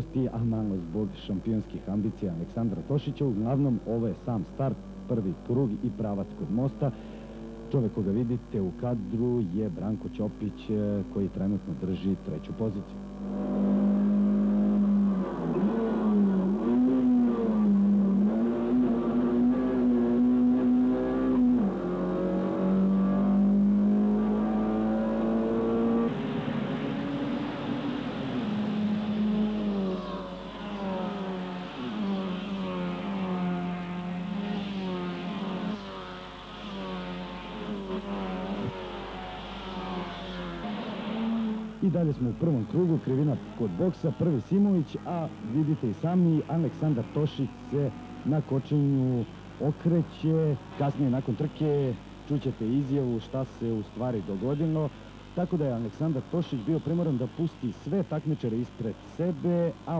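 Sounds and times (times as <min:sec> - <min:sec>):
race car engine at full throttle: 0:00.0 - 0:59.9
race cars driving past: 0:00.0 - 0:59.9.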